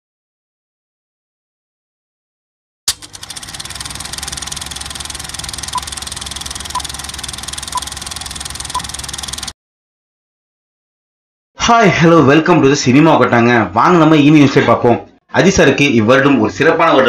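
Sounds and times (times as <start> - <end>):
film projector clatter: 2.9 - 9.6.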